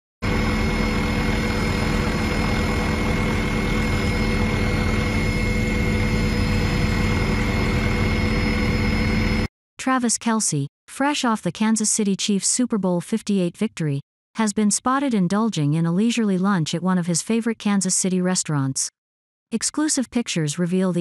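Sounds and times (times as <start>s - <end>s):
helicopter engine drone: 0.2s - 9.5s.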